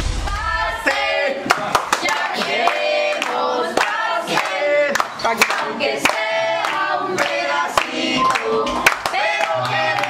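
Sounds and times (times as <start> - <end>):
hand claps: 0.3 - 10.0
people singing a birthday tune: 0.3 - 10.0.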